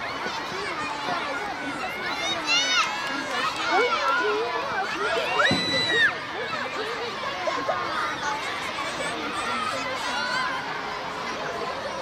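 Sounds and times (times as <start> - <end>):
children shouting: 0.0 - 12.0.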